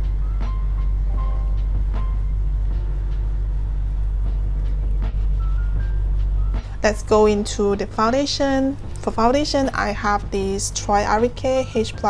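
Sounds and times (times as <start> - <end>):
soft melody notes: 0.0 - 8.2
deep bass: 0.0 - 12.0.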